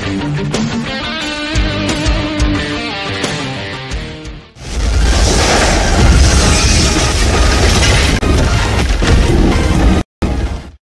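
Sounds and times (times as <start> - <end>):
deep boom: 4.6 - 9.5
glass shattering: 4.8 - 8.2.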